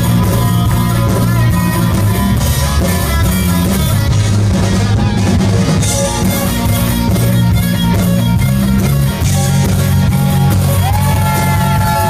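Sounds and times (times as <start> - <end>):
bass and drums: 0.0 - 12.0
electric guitar: 0.0 - 12.0.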